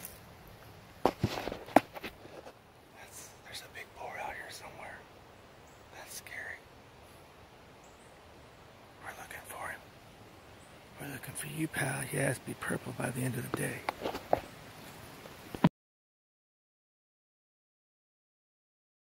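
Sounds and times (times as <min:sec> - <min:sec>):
person whispering: 0:02.9 - 0:05.1, 0:05.9 - 0:06.7, 0:09.0 - 0:09.9, 0:11.0 - 0:13.9.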